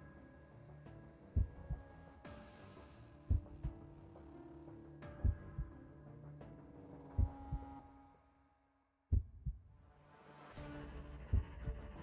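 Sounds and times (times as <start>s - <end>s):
heartbeat thumps: 1.3s - 1.8s, 3.3s - 3.8s, 5.2s - 5.8s, 7.2s - 7.7s, 9.1s - 9.7s, 11.3s - 11.8s.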